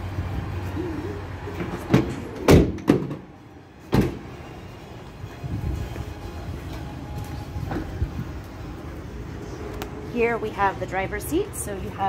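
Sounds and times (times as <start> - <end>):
van doors shutting: 1.4 - 4.5.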